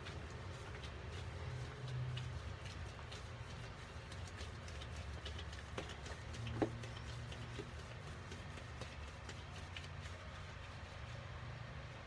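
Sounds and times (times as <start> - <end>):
crumbly mixture crackling: 0.0 - 12.0.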